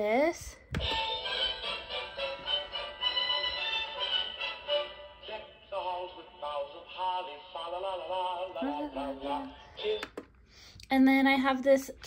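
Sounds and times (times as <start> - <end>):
toy jukebox playing sung song: 0.8 - 10.2.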